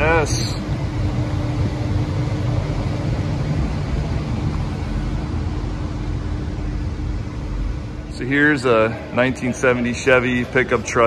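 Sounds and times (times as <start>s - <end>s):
air handling hum and hiss: 0.0s - 11.0s.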